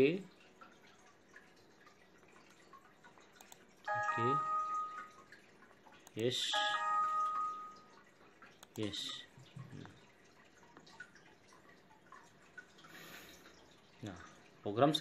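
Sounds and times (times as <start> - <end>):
computer alert chimes: 3.9 - 5.3, 6.4 - 8.1.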